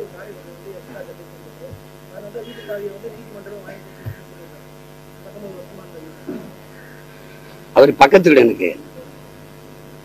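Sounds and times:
faint voices murmuring: 0:00.0 - 0:07.8
electrical hum: 0:00.0 - 0:10.0.

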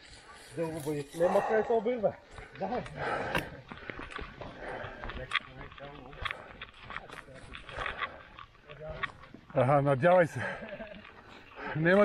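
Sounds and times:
footsteps on dirt track: 0:01.4 - 0:12.0
bikes knocking and rattling: 0:02.0 - 0:12.0.

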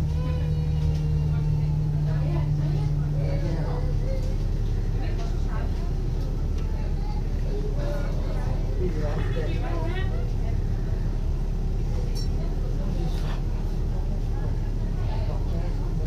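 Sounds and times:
bus engine drone: 0:00.0 - 0:16.0
passengers talking: 0:00.0 - 0:16.0.

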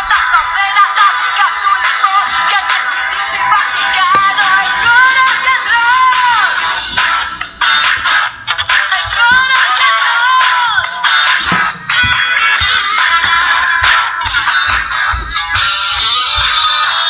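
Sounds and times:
pop backing track: 0:00.0 - 0:17.0
woman singing pop song: 0:00.0 - 0:17.0.

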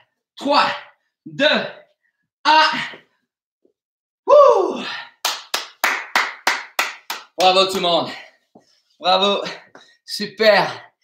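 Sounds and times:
person clapping hands: 0:05.2 - 0:08.1.

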